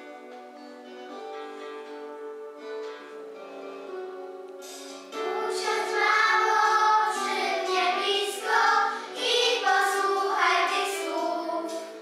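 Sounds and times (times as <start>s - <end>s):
instrumental accompaniment: 0.0s - 12.0s
children singing in unison: 5.1s - 12.0s.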